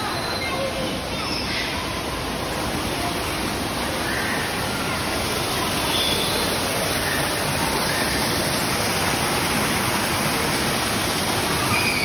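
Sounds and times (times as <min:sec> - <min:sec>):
waterfall rushing over rocks: 0:00.0 - 0:12.0.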